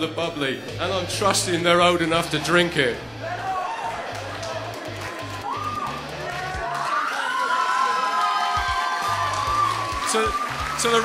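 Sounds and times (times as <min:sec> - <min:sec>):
music playing: 0:00.0 - 0:11.0
audience cheering and whooping: 0:03.2 - 0:11.0.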